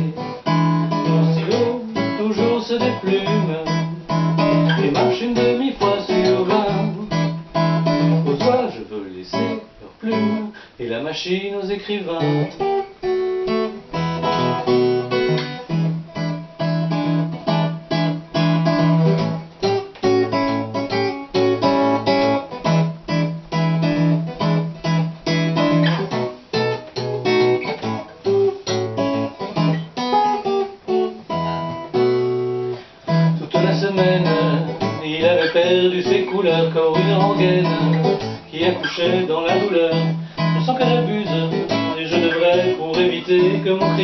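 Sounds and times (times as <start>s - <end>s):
acoustic guitar blues playing: 0.0s - 44.0s.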